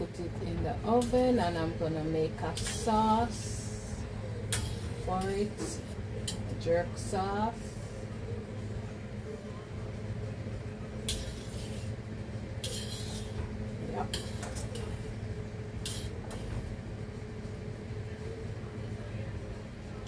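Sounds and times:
steady low hum: 0:00.0 - 0:20.0
metal spoon scraping a pan: 0:04.5 - 0:06.4, 0:11.1 - 0:12.0, 0:12.6 - 0:13.4, 0:14.0 - 0:15.0, 0:15.8 - 0:16.2.

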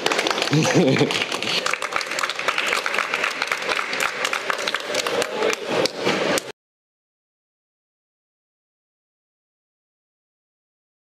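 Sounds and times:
audience applauding: 0:00.0 - 0:06.5.

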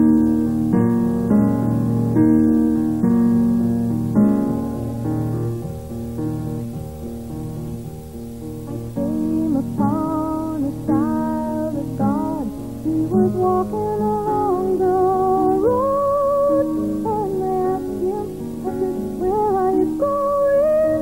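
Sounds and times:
grand piano accompaniment: 0:00.0 - 0:21.0
woman singing a slow song: 0:09.0 - 0:21.0.

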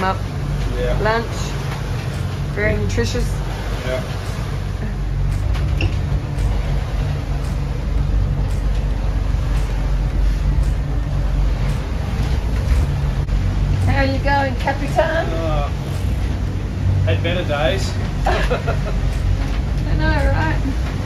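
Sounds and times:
boat engines droning: 0:00.0 - 0:21.0
hull and water noise: 0:00.0 - 0:21.0.

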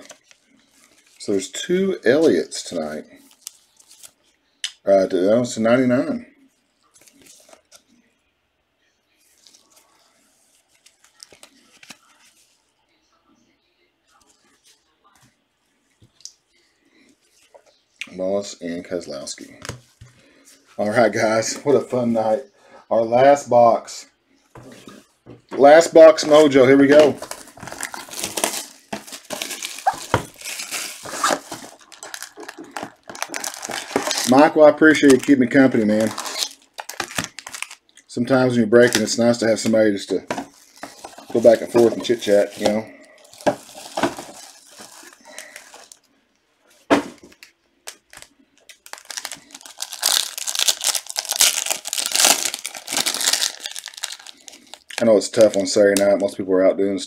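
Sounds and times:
plastic shrink wrap tearing: 0:26.2 - 0:37.8, 0:40.6 - 0:46.0, 0:47.3 - 0:56.0.

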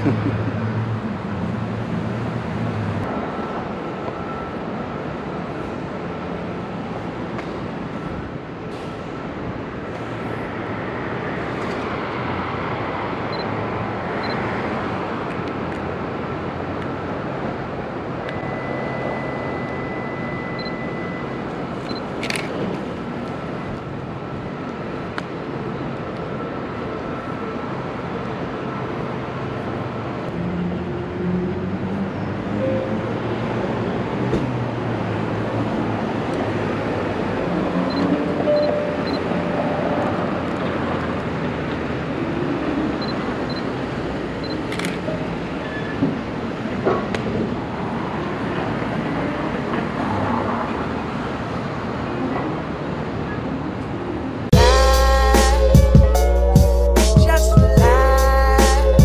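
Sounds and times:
street traffic: 0:00.0 - 0:59.0.

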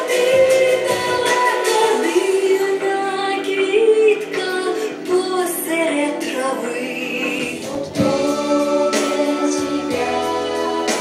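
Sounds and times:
music with children singing: 0:00.0 - 0:11.0.

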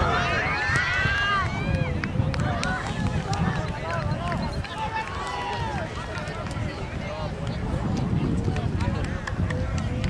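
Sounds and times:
crowd shouting: 0:00.0 - 0:06.5.

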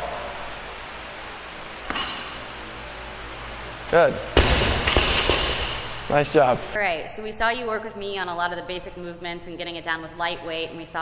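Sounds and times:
barbell thudding on rubber floor: 0:04.4 - 0:05.9.

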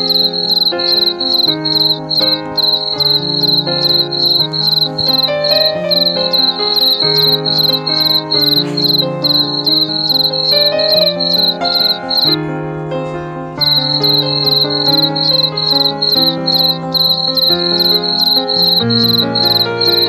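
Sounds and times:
cricket chirping: 0:00.0 - 0:12.4, 0:13.6 - 0:20.0
soft music of sustained chords: 0:00.0 - 0:20.0.

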